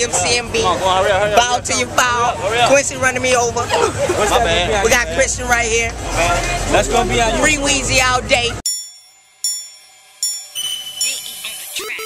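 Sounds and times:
bell-like chimes: 0:08.6 - 0:12.0
music: 0:08.8 - 0:12.0.

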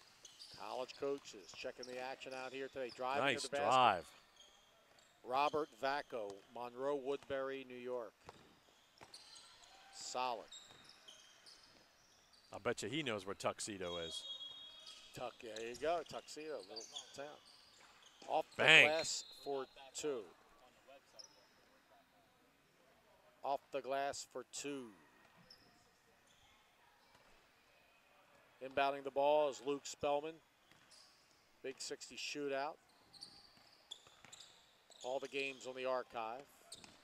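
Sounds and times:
sneaker squeaks: 0:00.0 - 0:06.4, 0:08.2 - 0:12.6, 0:13.9 - 0:19.5, 0:32.8 - 0:35.8, 0:36.6 - 0:37.0
basketball bouncing on court: 0:08.2 - 0:09.2.

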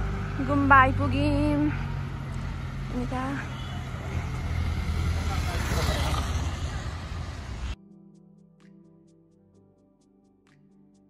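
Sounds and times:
street noise: 0:00.0 - 0:07.8
vehicle engine running: 0:00.0 - 0:07.8.

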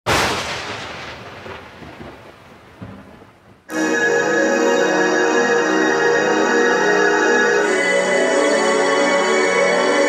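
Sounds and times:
thunderclap and rumble: 0:00.1 - 0:03.7
organ-like music chords: 0:03.7 - 0:10.0.

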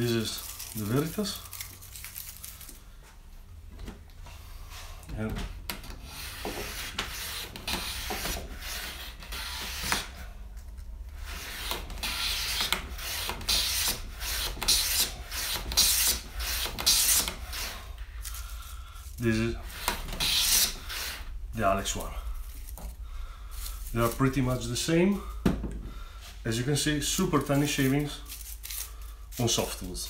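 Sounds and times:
hand plane swishing on wood: 0:06.0 - 0:10.2, 0:11.3 - 0:17.9.

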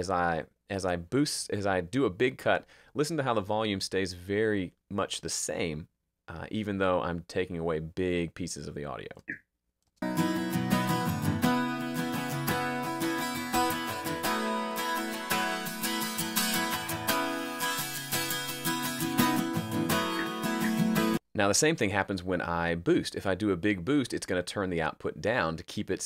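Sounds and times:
acoustic guitar playing: 0:10.0 - 0:21.2.

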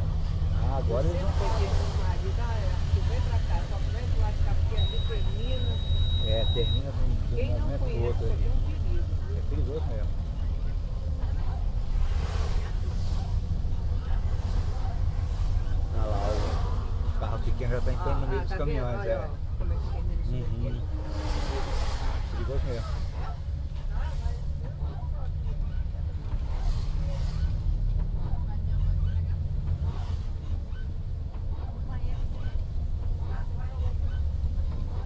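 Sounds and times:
bus rumble from inside: 0:00.0 - 0:35.0
tyres hissing on wet road: 0:00.6 - 0:04.7, 0:11.8 - 0:18.0, 0:21.0 - 0:23.3.

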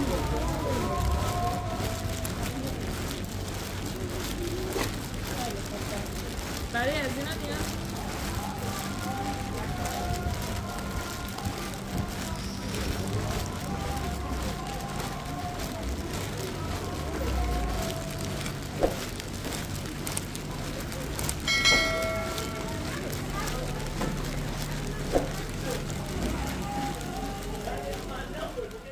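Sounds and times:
faint indistinct voices: 0:00.0 - 0:28.9.

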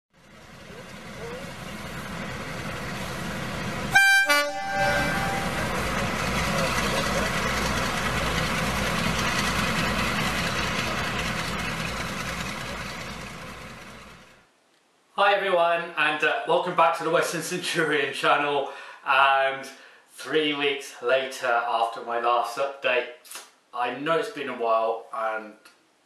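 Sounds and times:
locomotive engine rumble: 0:00.2 - 0:14.4
locomotive two-tone horn: 0:03.8 - 0:07.8.

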